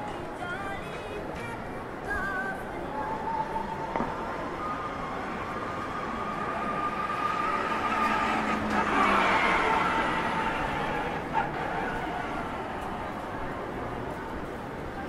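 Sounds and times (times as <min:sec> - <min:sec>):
busy pedestrian street noise: 0:00.0 - 0:15.0
small motor vehicle whine: 0:00.8 - 0:15.0.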